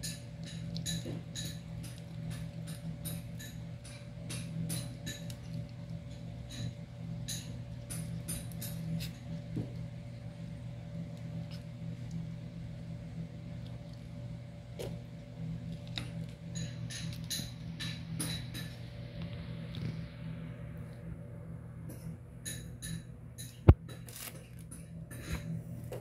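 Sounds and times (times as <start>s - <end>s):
kitten crunching fish bones: 0.0s - 20.1s
steady low hum: 0.0s - 26.0s.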